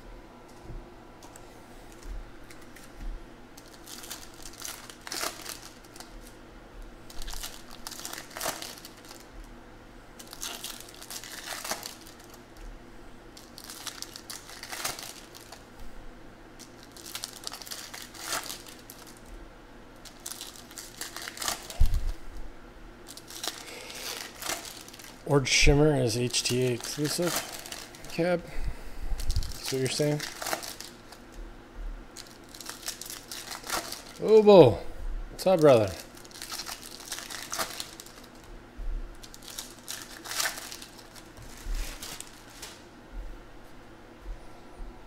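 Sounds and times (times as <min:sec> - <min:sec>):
foil wrappers tearing and crinkling: 0:03.6 - 0:06.4, 0:07.0 - 0:09.6, 0:10.2 - 0:12.5, 0:13.3 - 0:15.7, 0:16.6 - 0:19.3, 0:20.0 - 0:22.2, 0:23.0 - 0:28.4, 0:29.2 - 0:31.4, 0:32.1 - 0:34.5, 0:35.4 - 0:38.5, 0:39.1 - 0:42.9.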